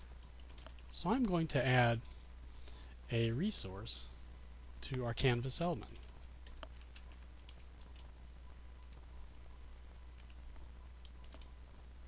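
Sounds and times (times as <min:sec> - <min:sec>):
low steady hum: 0:00.0 - 0:12.0
keyboard keys clicking: 0:00.1 - 0:00.9, 0:11.0 - 0:11.5.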